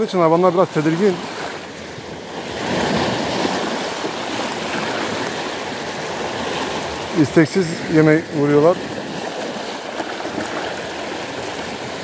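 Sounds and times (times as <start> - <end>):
waves washing over rocks: 0.0 - 12.0.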